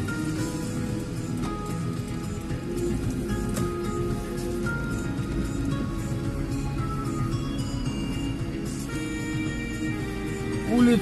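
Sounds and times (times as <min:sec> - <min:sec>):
music with slow held notes: 0:00.0 - 0:11.0.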